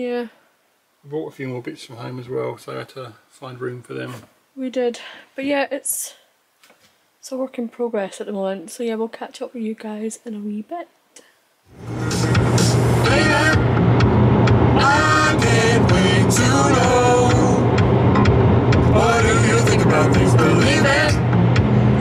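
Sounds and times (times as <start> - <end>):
car engine and road hum: 11.7 - 22.0
song with singing: 11.9 - 13.8, 14.6 - 21.4.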